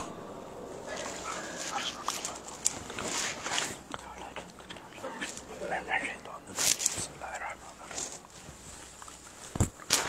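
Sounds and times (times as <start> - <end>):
faint voice-like whine: 0.0 - 8.4
faint rustling and shuffling: 0.0 - 10.0.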